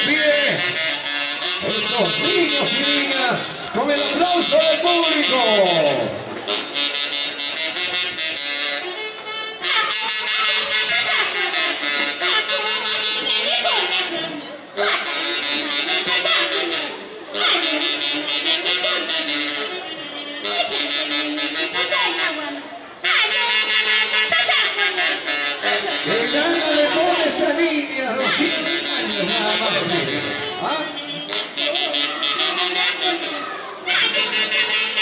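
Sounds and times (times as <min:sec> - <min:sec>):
voices calling out: 0:00.0 - 0:07.9, 0:08.8 - 0:35.0
saxophones playing dance tune: 0:00.0 - 0:35.0.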